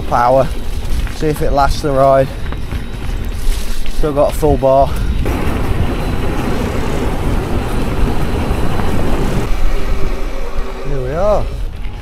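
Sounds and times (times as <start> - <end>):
bike tyres on wet road: 0.0 - 12.0
steady whine: 0.0 - 12.0
wind on microphone: 0.0 - 12.0.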